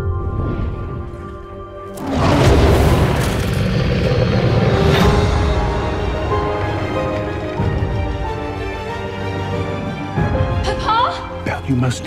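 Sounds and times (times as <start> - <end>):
trailer music: 0.0 - 12.0
dense sustained rumble: 2.1 - 7.0.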